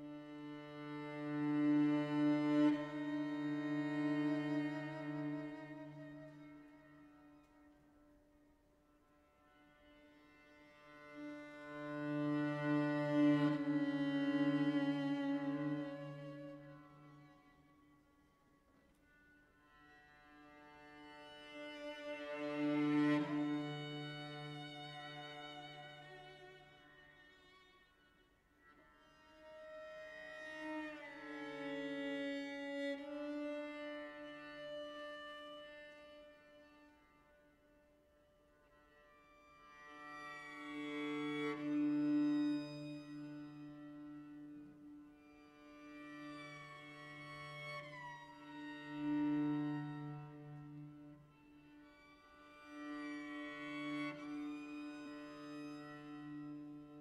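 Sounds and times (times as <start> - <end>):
cello playing slow bowed notes: 0.0 - 7.8, 9.9 - 17.8, 20.0 - 37.0, 39.9 - 57.0.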